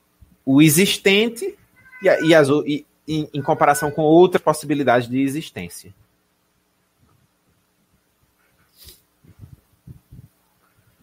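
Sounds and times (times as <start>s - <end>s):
short sharp breath: 8.7s - 9.1s.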